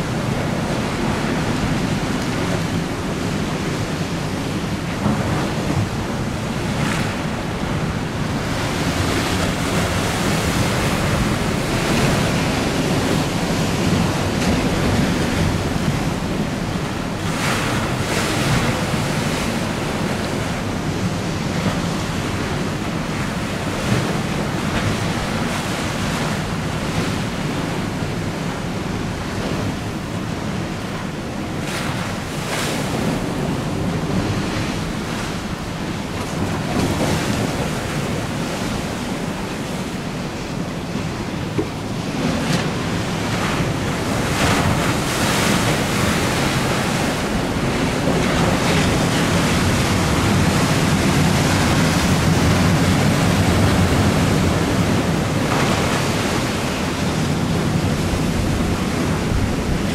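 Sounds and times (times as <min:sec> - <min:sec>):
choppy river water slapping: 0:00.0 - 0:59.9.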